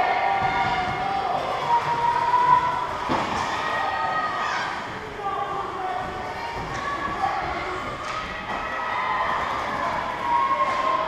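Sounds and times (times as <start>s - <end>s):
distant voices and shouts: 0.0s - 11.0s.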